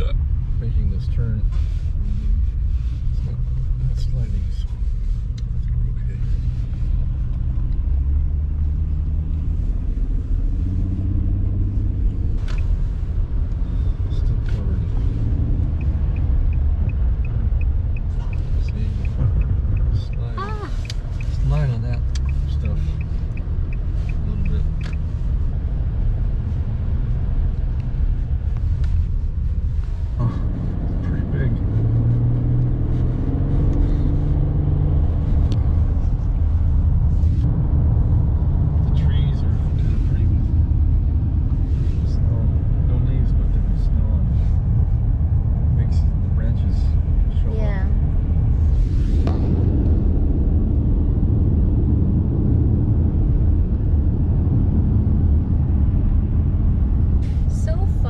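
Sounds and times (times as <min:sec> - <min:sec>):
car engine rumble: 0:00.0 - 0:58.0
tyres on slushy road: 0:00.0 - 0:58.0
turn signal ticking: 0:12.0 - 0:30.4.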